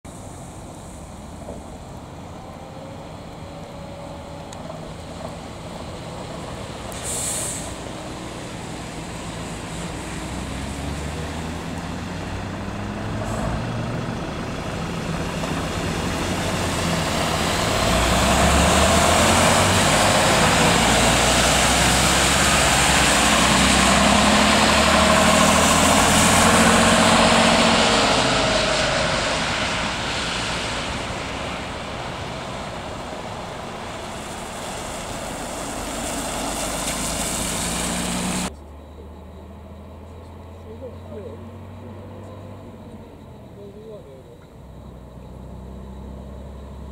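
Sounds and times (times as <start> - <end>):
tyre hiss on wet road: 0.1 - 2.3, 5.0 - 12.2, 12.9 - 38.5
bus engine running: 0.1 - 46.9.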